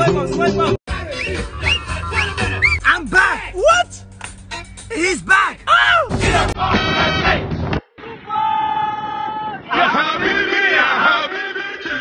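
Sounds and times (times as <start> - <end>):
men shouting and singing: 0.0 - 7.5, 8.1 - 12.0
music playing: 0.0 - 7.5.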